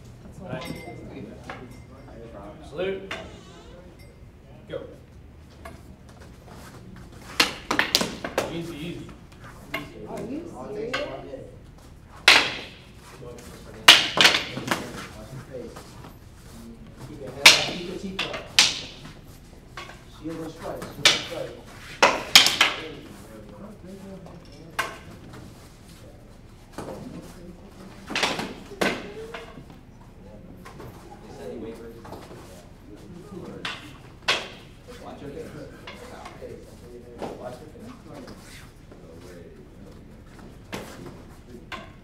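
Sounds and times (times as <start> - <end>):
wooden sticks clacking: 7.3 - 8.5, 12.2 - 13.0, 13.8 - 14.8, 17.4 - 20.1, 20.8 - 23.0, 28.1 - 29.6, 33.6 - 34.7.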